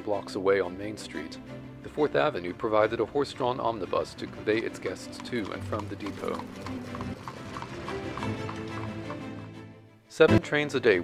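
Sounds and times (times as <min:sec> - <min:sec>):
background music: 0:00.0 - 0:11.0
horse hooves clip-clopping: 0:02.2 - 0:09.7.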